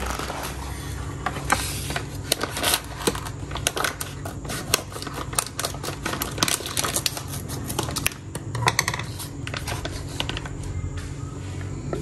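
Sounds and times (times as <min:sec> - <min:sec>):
plastic sachets crinkling: 0:00.0 - 0:08.4.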